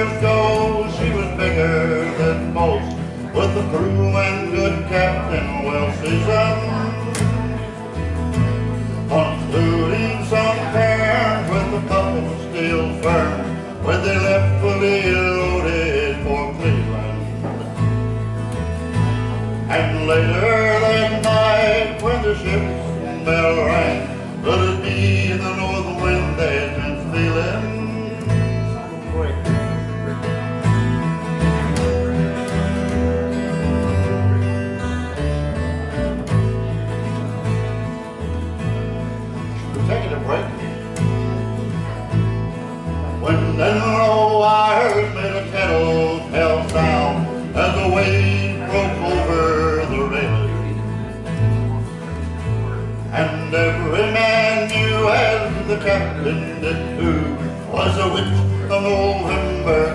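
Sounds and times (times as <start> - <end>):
man singing: 0.0 - 17.8, 19.3 - 30.3, 39.4 - 41.4, 42.0 - 59.9
acoustic guitar: 0.0 - 59.9
plucked upright bass: 0.0 - 59.9.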